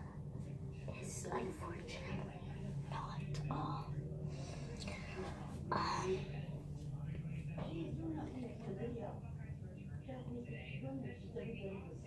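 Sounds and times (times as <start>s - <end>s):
steady low hum: 0.0s - 12.0s
girl whispering: 2.9s - 4.0s, 4.7s - 6.5s.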